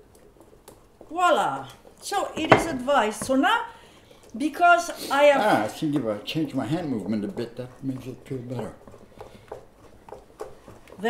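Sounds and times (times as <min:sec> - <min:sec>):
wooden spoons tapping and scraping bowls: 0:00.0 - 0:11.0.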